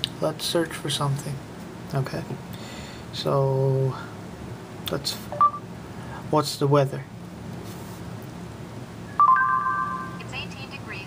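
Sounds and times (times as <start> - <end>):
phone voice search chime: 9.2 - 10.4.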